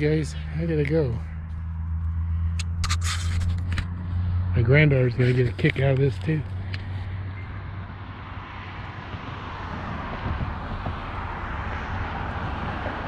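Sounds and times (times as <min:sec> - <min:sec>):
low hum: 0:00.0 - 0:08.5.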